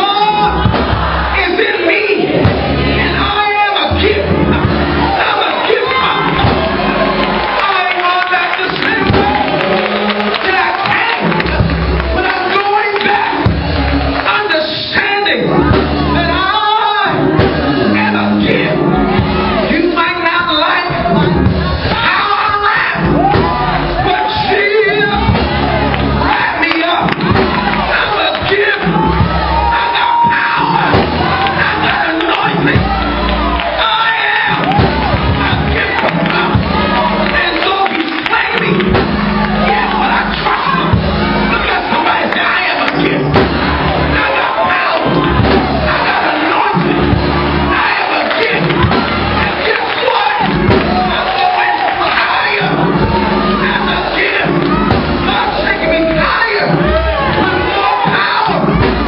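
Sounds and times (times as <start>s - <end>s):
man shouting over microphone: 0.0s - 13.5s, 14.2s - 58.9s
band playing: 0.0s - 59.0s
congregation shouting and cheering: 0.0s - 59.0s
live church music with drums: 0.0s - 59.0s.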